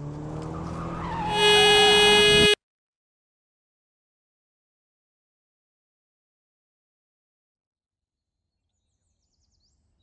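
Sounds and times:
car engine approaching: 0.0 - 2.5
car horn blaring: 1.2 - 2.6.

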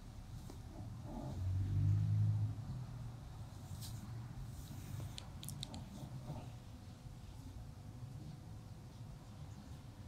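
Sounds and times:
passing vehicle engine rumble: 0.6 - 5.3.

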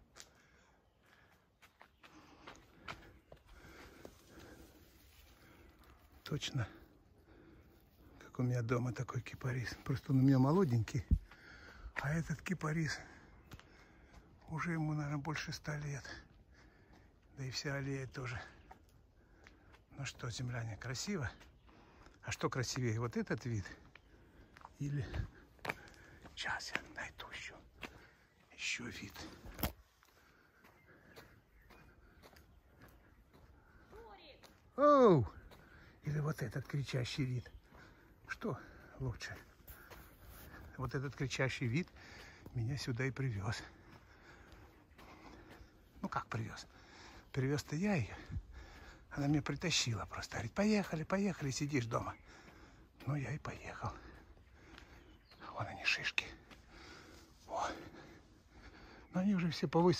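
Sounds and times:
footsteps on asphalt: 0.0 - 17.6, 18.2 - 59.9
faint outdoor background: 0.0 - 59.9.

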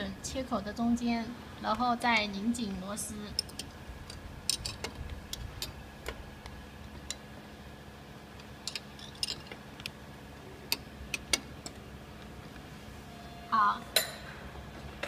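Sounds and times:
steady low hum: 0.0 - 15.0
spanner clicking on bolt: 3.3 - 6.2, 8.4 - 9.9.

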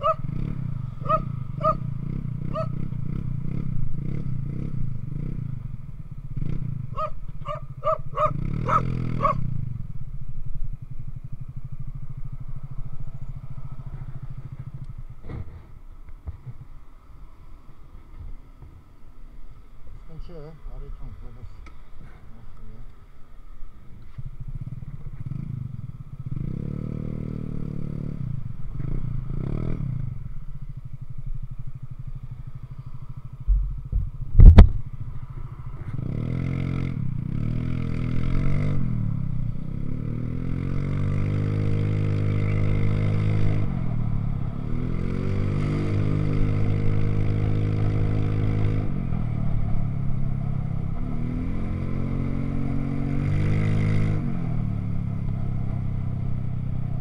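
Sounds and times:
motorcycle engine revving: 0.0 - 16.9, 23.7 - 57.0
sharp thump: 33.5 - 34.8.

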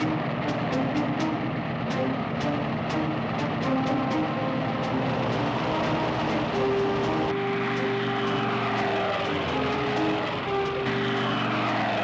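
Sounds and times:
propeller planes flying past: 0.0 - 12.0.

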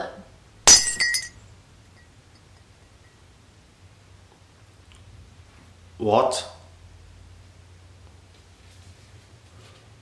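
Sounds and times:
glass breaking: 0.7 - 1.4
glass pieces clinking: 0.7 - 1.4.

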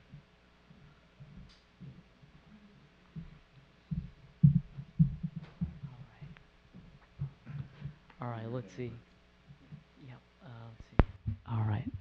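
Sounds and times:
footsteps on wooden floor: 3.2 - 8.0.

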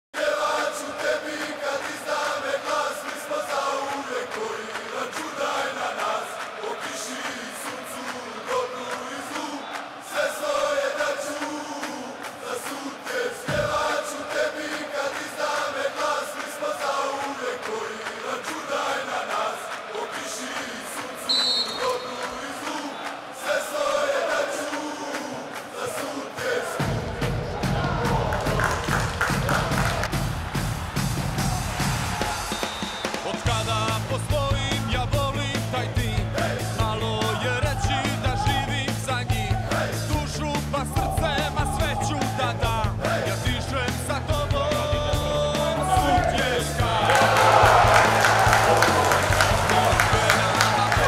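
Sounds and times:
voices chanting in unison: 0.2 - 30.3, 31.4 - 51.0
short high whistle: 21.3 - 22.2, 32.4 - 33.2.

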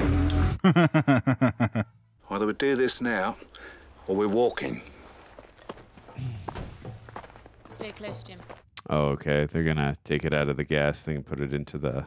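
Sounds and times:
footsteps: 3.3 - 8.8.

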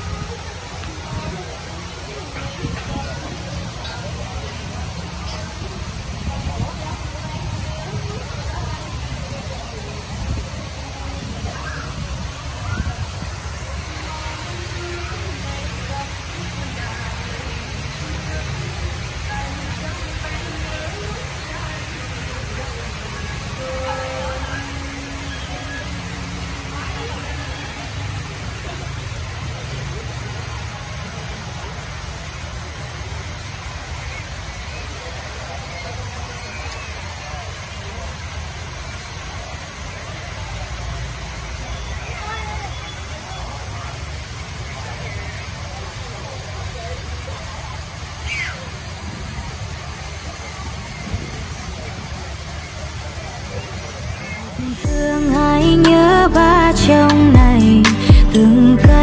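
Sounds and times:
background voices: 0.0 - 36.4, 48.9 - 59.0
low rumble and hiss: 0.0 - 59.0.

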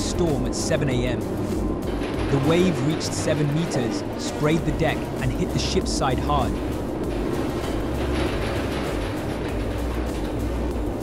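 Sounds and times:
background music: 0.0 - 11.0
heavy seas: 0.0 - 11.0.

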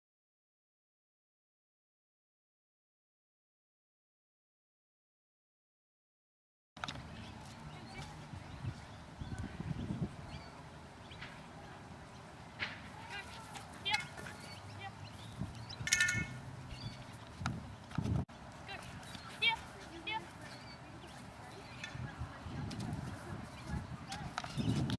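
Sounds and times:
high chirping calls: 7.0 - 12.4, 13.0 - 17.9, 18.7 - 22.3, 23.4 - 24.9.

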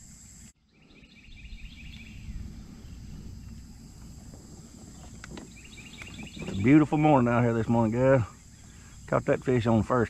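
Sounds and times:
high insect buzz: 0.0 - 10.0
bird chirps: 0.1 - 9.2.

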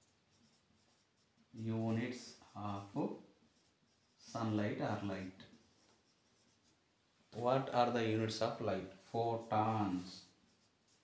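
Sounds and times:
faint writing sounds: 0.0 - 11.0
man speaking: 1.6 - 3.2, 4.3 - 5.4, 7.4 - 10.3.

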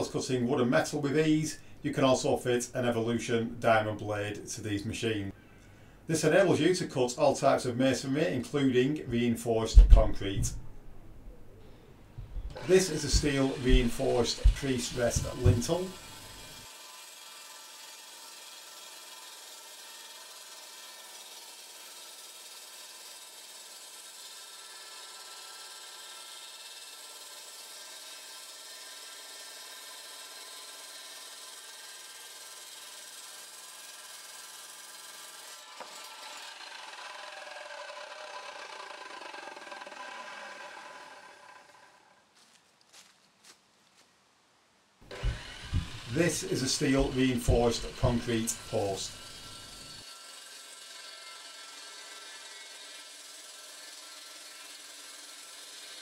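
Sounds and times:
saw motor winding down: 12.4 - 42.4, 45.0 - 56.0
chop saw cutting concrete: 12.5 - 42.2, 45.0 - 56.0.

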